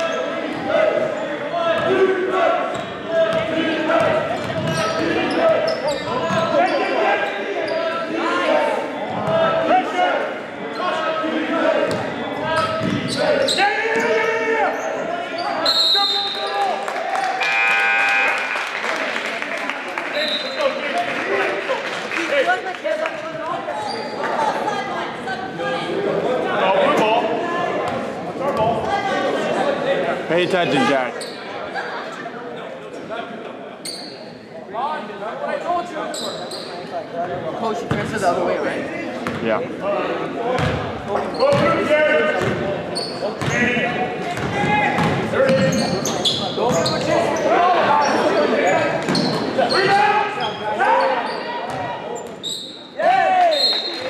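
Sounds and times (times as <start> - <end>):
people talking: 18.9 - 33.6, 34.6 - 52.3.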